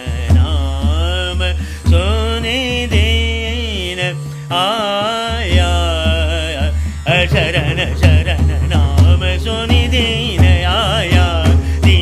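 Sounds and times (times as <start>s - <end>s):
man singing long notes: 0.0s - 12.0s
pakhavaj drumming: 0.0s - 12.0s.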